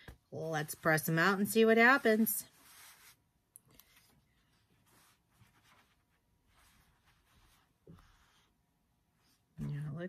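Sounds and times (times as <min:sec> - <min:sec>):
fabric rustling: 0:00.6 - 0:08.5.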